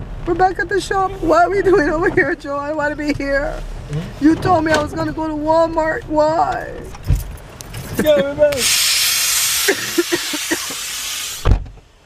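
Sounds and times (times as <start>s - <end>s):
rain hissing: 8.6s - 11.5s.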